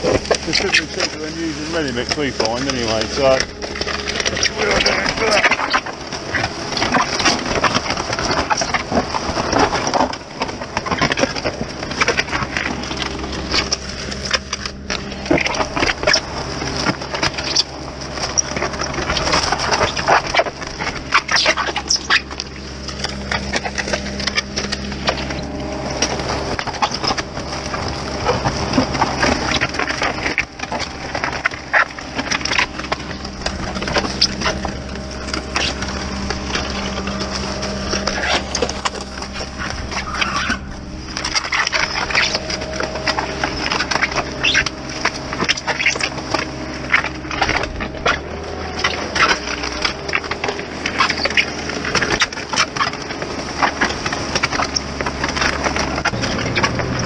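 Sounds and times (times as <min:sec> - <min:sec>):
engine humming: 0:00.0 - 0:57.0
paper bags tearing and rustling: 0:00.0 - 0:57.0.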